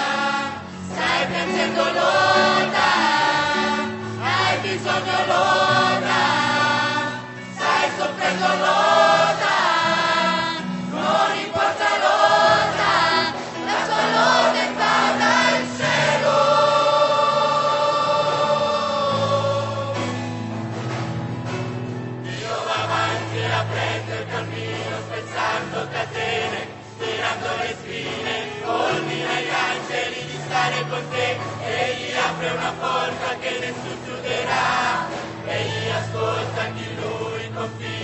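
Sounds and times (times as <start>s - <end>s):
choir singing gospel song: 0.0s - 38.0s.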